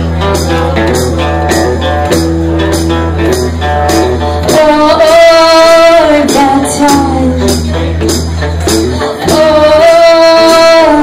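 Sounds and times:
bass guitar: 0.0s - 11.0s
electric guitar playing blues-rock: 0.0s - 11.0s.

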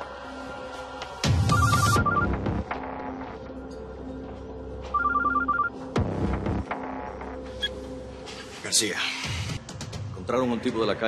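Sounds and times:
soft background music: 0.0s - 11.0s
phone ringtone beeps: 1.5s - 2.4s, 4.9s - 5.7s.

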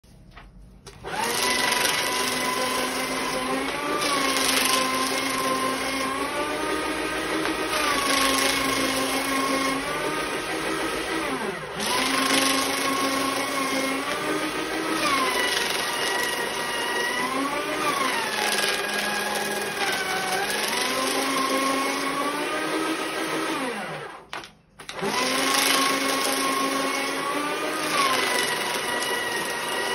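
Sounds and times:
paper shredder running: 0.8s - 29.9s.

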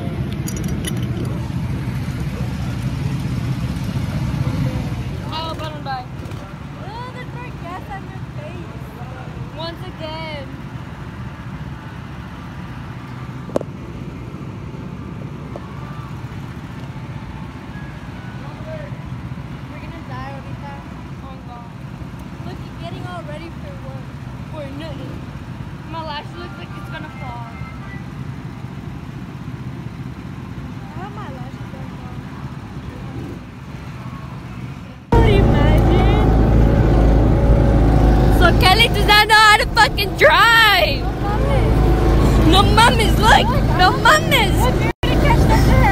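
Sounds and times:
go-kart engines droning: 0.0s - 45.9s
faint voices: 38.2s - 45.9s.

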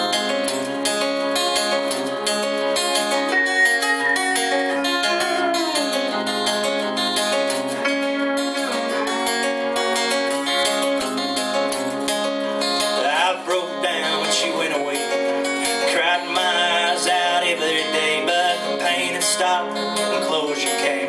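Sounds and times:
acoustic guitar strumming: 0.0s - 21.0s
steel guitar sliding notes: 0.0s - 21.0s.

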